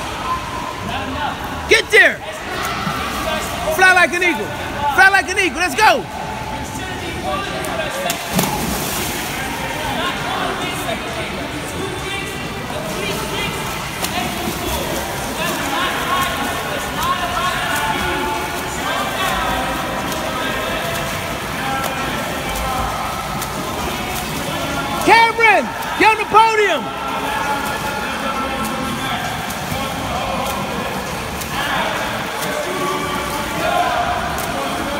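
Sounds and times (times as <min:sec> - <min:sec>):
swimmer splashing: 0:00.0 - 0:34.9.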